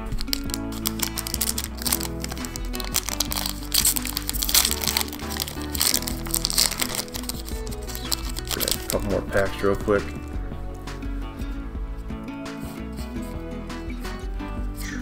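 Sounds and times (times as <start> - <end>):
foil wrapper crinkling and tearing: 0.0 - 9.5
background music: 0.0 - 15.0.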